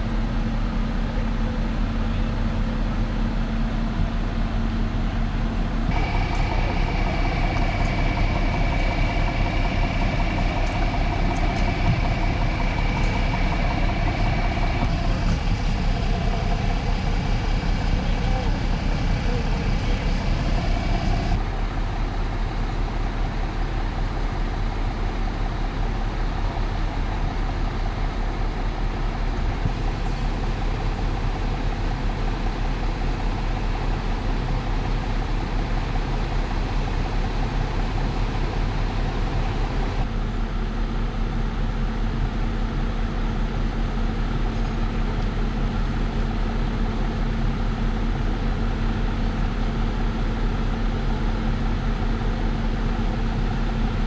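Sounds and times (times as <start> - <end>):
diesel engine idling: 0.0 - 54.0
faint voices: 14.2 - 21.4.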